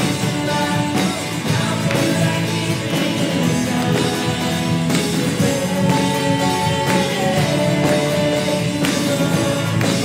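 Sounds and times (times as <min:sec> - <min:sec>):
acoustic guitar: 0:00.0 - 0:10.0
people singing: 0:00.0 - 0:10.0.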